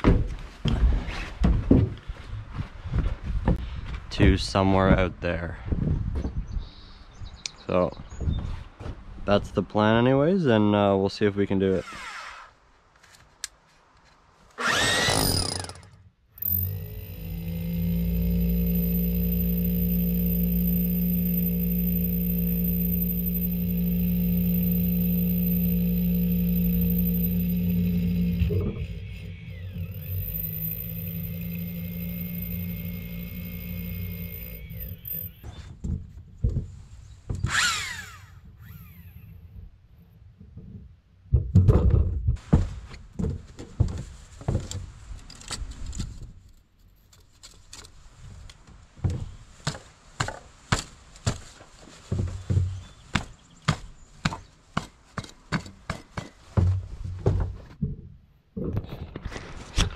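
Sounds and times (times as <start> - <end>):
rotary hammer drilling into stone: 14.6 - 35.4.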